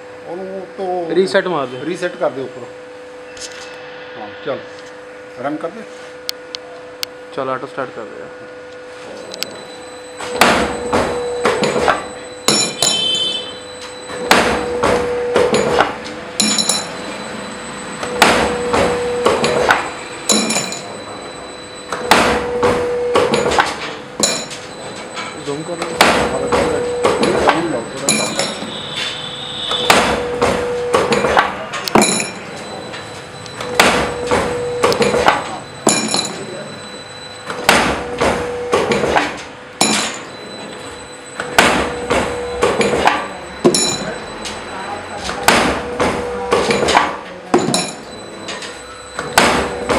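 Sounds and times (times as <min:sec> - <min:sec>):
machine humming: 0:00.0 - 0:49.9.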